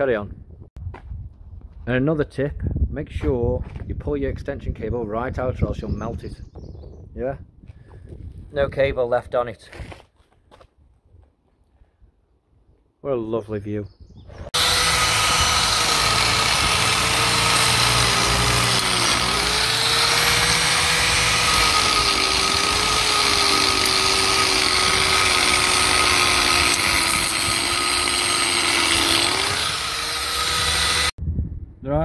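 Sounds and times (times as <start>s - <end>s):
angle grinder grinding mortar: 14.5s - 31.1s.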